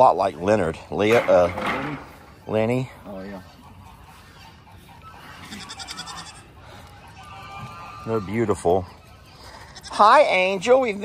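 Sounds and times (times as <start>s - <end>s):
goats bleating: 3.3s - 11.0s.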